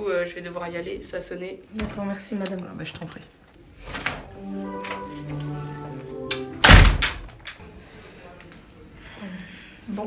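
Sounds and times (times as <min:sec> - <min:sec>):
short melody: 0:04.2 - 0:07.4
door shutting with knock: 0:06.6 - 0:07.3.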